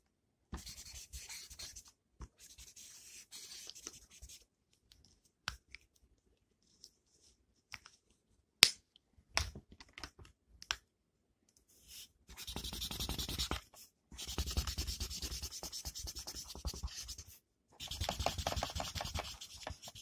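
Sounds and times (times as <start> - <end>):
pencil scratching on paper: 0.6 - 4.4, 11.8 - 20.0.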